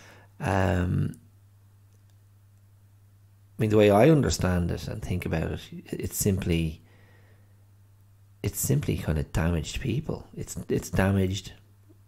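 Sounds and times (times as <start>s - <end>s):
low steady hum: 0.0s - 12.0s
man saying um: 0.4s - 1.2s, 3.6s - 6.8s, 8.5s - 11.6s.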